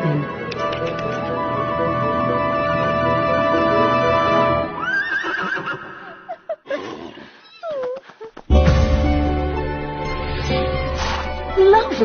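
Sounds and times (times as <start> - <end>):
background music: 0.0 - 5.2, 8.5 - 12.0
horse whinnying: 4.8 - 7.9.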